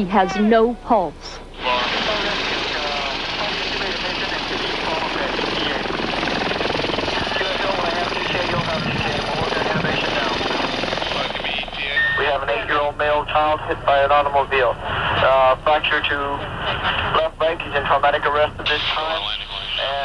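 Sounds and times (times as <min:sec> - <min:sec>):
indistinct voices: 0:00.0 - 0:06.0
helicopter engine and rotor: 0:01.5 - 0:18.4
radio chatter: 0:01.6 - 0:20.0.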